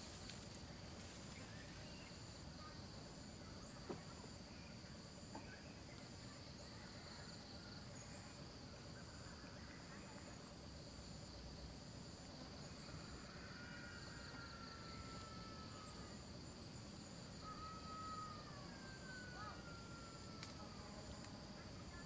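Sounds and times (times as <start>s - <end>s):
insects buzzing: 0.0s - 22.0s
pulsing insect trill: 0.0s - 22.0s.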